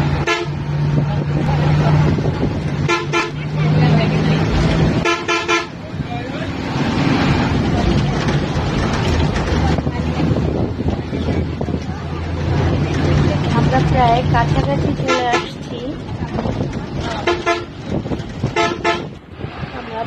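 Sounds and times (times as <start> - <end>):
bus engine running: 0.0 - 20.0
vehicle horn blasts: 0.2 - 0.6, 2.8 - 3.5, 5.0 - 5.8, 17.2 - 17.8, 18.5 - 19.2.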